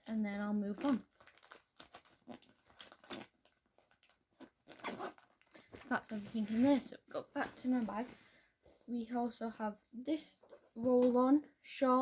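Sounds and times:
packets rustling and crinkling: 0.3s - 8.3s.

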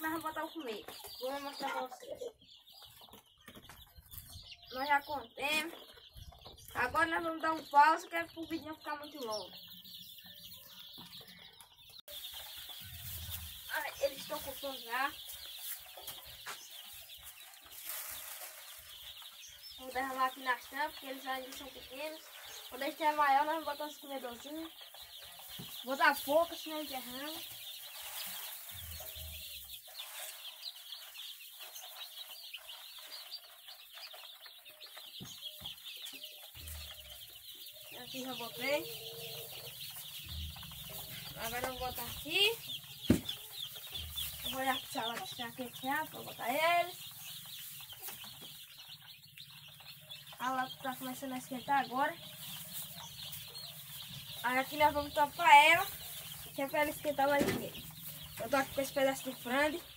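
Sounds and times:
chicks peeping: 0.0s - 59.9s.

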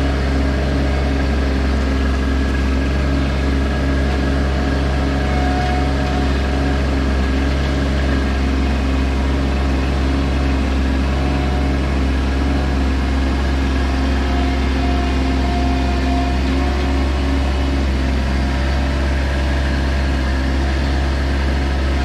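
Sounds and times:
loader engine running: 0.0s - 22.0s.

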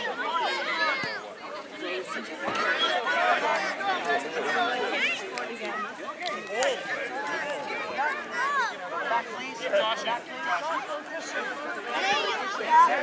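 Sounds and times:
children chattering and calling out: 0.0s - 13.0s.

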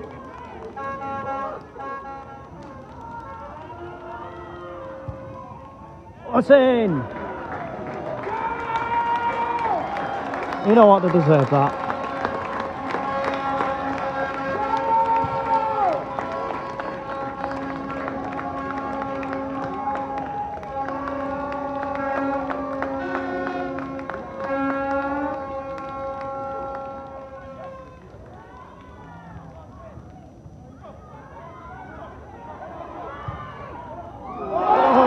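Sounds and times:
music over stadium loudspeakers: 10.3s - 27.6s.

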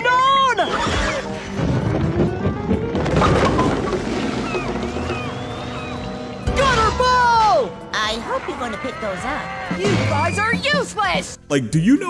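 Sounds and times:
thin rising whistle: 4.5s - 6.5s.

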